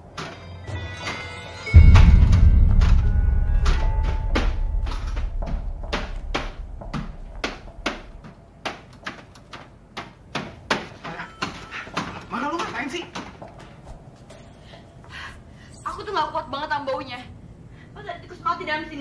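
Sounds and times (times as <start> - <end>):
deep boom: 1.8 - 8.2.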